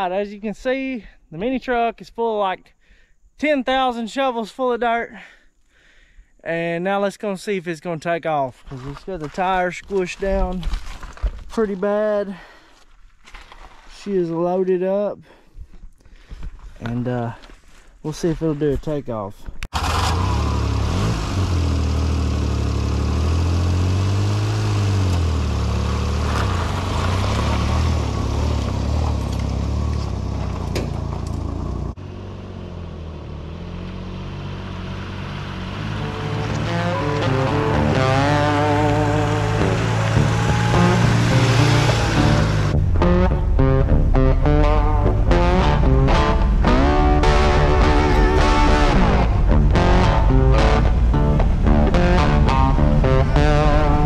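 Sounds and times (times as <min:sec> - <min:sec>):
truck engine revving: 0:19.7 - 0:54.0
guitar music with steady beat: 0:35.9 - 0:54.0.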